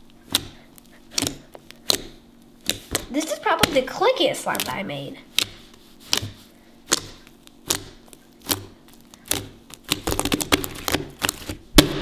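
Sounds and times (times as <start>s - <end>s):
slime clicking and popping: 6.9s - 12.0s.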